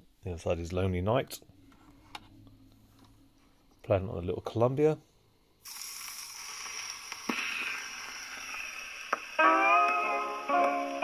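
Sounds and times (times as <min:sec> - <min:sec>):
record surface hiss and crackle: 0:00.0 - 0:11.0.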